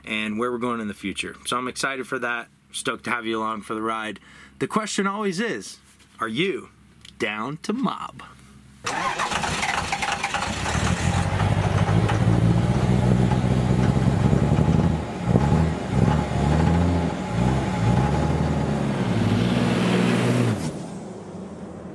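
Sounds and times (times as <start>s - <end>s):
vehicle engine starting and revving: 8.9s - 21.9s.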